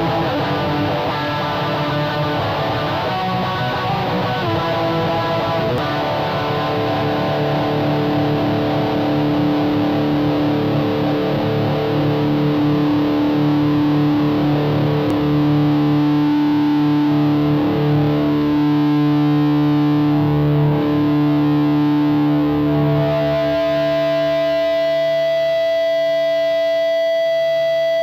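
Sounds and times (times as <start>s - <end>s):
distorted electric guitar chords: 0.0s - 28.0s.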